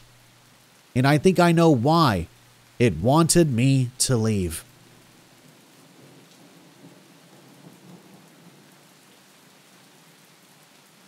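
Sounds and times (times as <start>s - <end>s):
faint steady rain: 0.0s - 11.0s.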